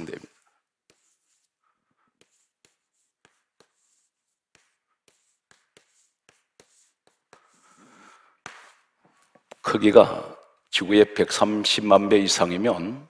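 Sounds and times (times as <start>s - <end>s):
chalk tapping on blackboard: 0.0s - 9.6s.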